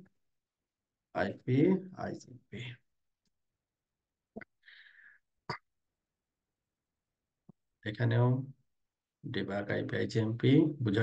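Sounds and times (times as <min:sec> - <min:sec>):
faint breath: 0:04.6 - 0:05.3.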